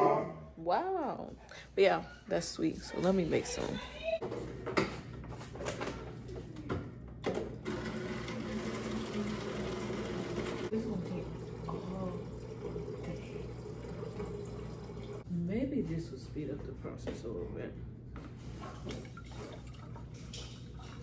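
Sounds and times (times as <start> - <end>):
water pouring into plastic jug: 8.1 - 15.2.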